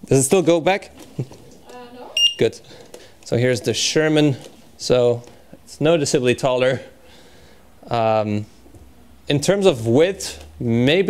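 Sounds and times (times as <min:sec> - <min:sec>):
high electronic beep: 0:02.2 - 0:02.5.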